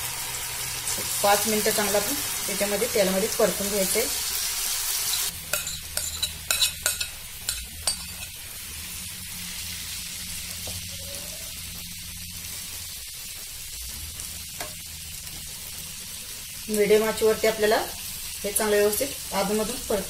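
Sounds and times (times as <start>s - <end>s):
food sizzling in hot oil: 0.0s - 20.0s.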